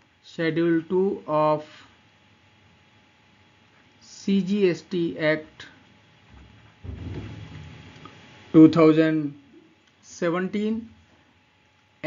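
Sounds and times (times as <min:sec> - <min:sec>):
speech: 0:00.2 - 0:02.0, 0:04.0 - 0:05.8, 0:08.5 - 0:11.0
low rumble: 0:06.4 - 0:08.5.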